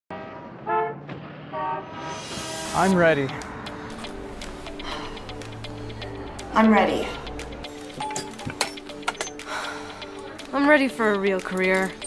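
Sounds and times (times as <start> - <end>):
vehicle horn honks: 0.1 - 2.8
traffic: 0.1 - 12.0.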